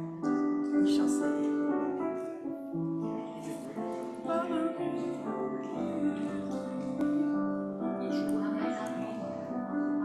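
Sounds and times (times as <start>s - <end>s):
keyboard chords: 0.0s - 10.0s.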